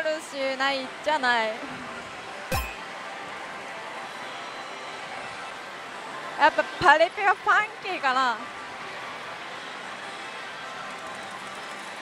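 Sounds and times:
slot machines running: 2.5 - 2.8.

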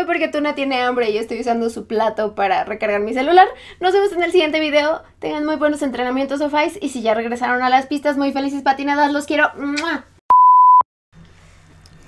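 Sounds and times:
steady beep tone: 10.3 - 10.8.

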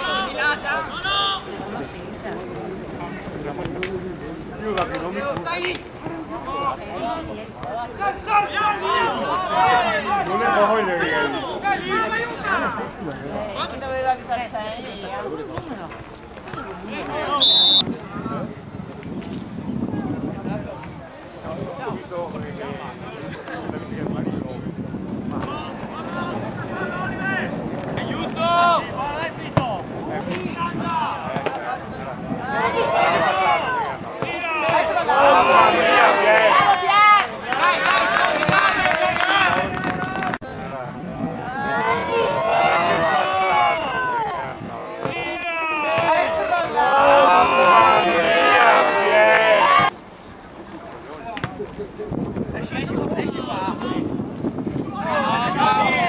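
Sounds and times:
wind noise on microphone: 15.5 - 45.0, 51.5 - 56.0
people shouting and calling: 32.4 - 40.4, 41.4 - 49.9, 54.8 - 56.0.

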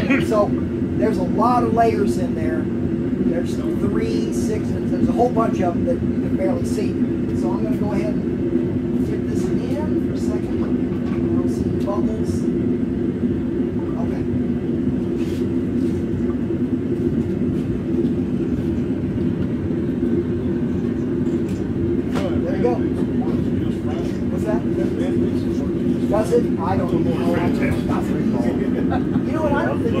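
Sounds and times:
gas forge burner humming: 0.0 - 30.0.

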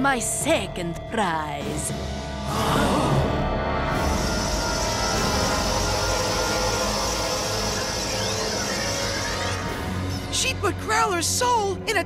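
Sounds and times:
dramatic background music: 0.0 - 12.0
sweeping tones: 3.4 - 11.2
rushing humming whoosh: 3.6 - 10.3.

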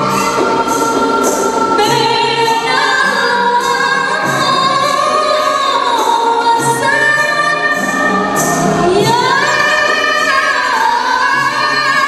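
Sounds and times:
women singing together: 0.0 - 12.0.

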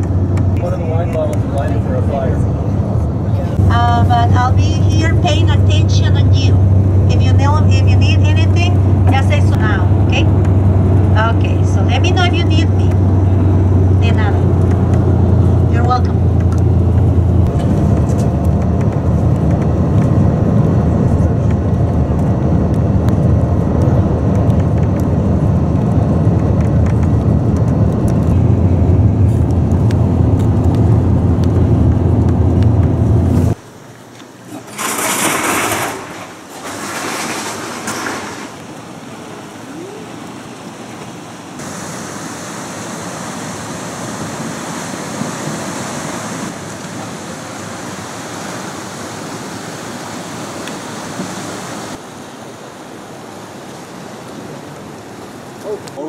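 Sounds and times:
road and engine rumble: 0.0 - 56.0
ocean surf on rocks: 33.5 - 56.0.

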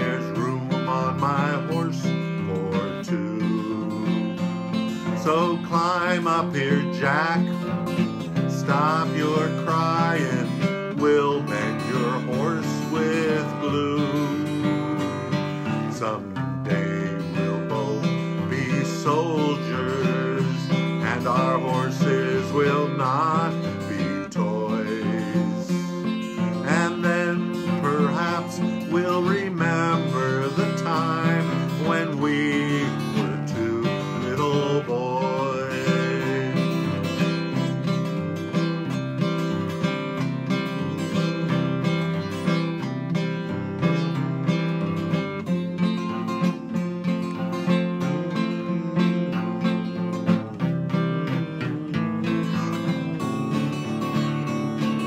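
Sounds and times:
acoustic guitar strumming: 0.0 - 55.0
man singing: 0.0 - 55.0.

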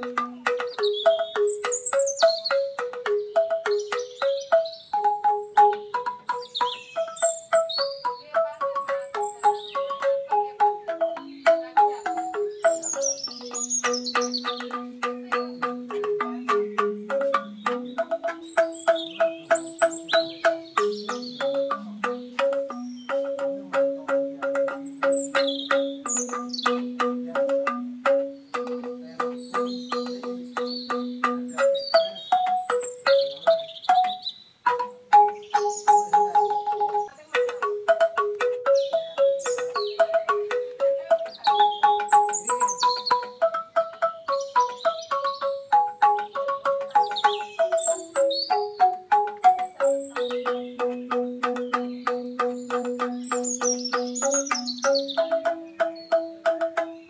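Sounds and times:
bamboo instruments struck with mallets: 0.0 - 57.0
birds chirping: 0.0 - 57.0.

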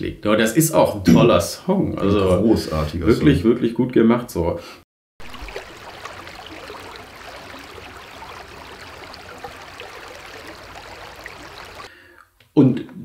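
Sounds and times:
stream flowing over stones: 5.2 - 11.9.

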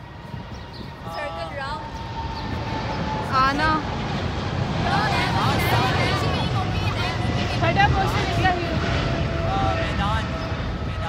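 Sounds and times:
steady low rumble: 0.0 - 11.0
voices talking and calling out: 0.0 - 11.0.

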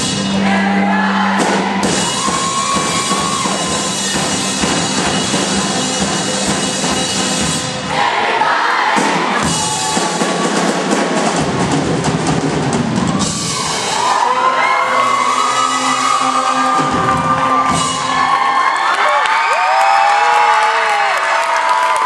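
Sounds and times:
drumming with cymbals: 0.0 - 8.2, 8.8 - 14.1, 16.7 - 18.5
saxophones and bass chord: 0.0 - 8.2, 13.4 - 18.4
audience cheering and shouting: 0.3 - 5.8, 7.9 - 11.0, 12.9 - 22.0.

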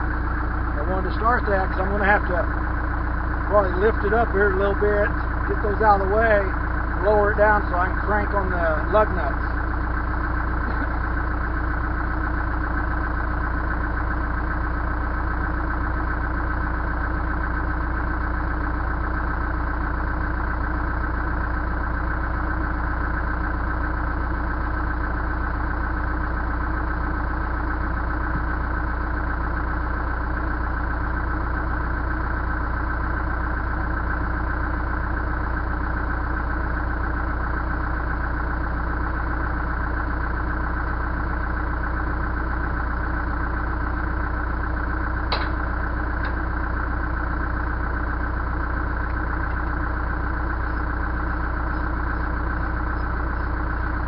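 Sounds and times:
backhoe engine idling: 0.0 - 54.0.

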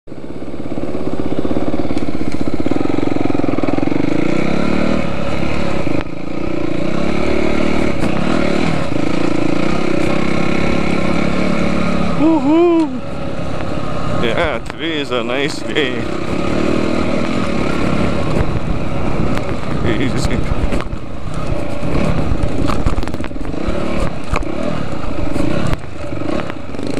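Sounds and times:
dirt bike engine revving: 0.1 - 26.9
short vocal sound: 12.2 - 13.0.

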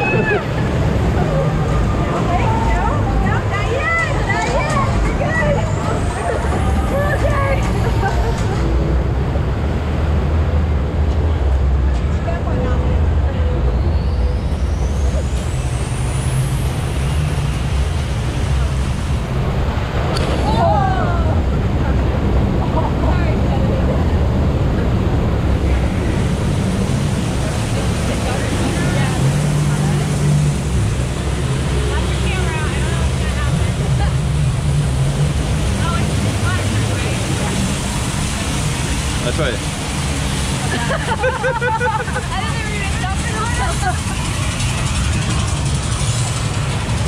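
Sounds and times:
low machinery rumble: 0.0 - 47.0
rushing churning water: 0.0 - 47.0
riders' voices: 20.4 - 45.4.

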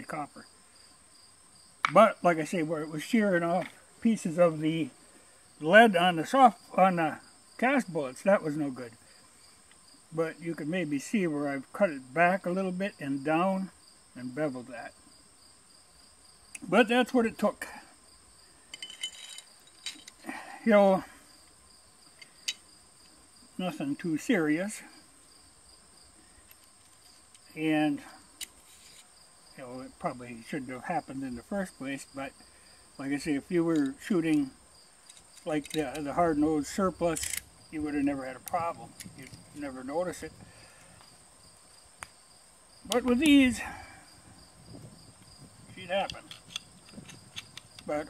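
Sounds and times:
crickets chirring: 0.0 - 48.0.

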